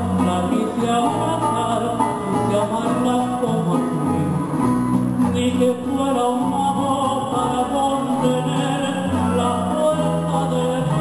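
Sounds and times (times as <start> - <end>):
steady bass notes: 0.0 - 11.0
strummed four-string guitar: 0.0 - 11.0.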